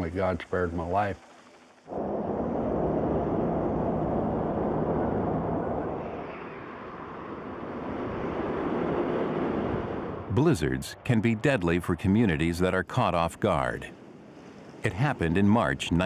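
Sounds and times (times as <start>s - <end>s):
wind: 0.0s - 16.0s
vehicle driving through blizzard: 1.9s - 11.2s
low engine hum: 1.9s - 11.5s.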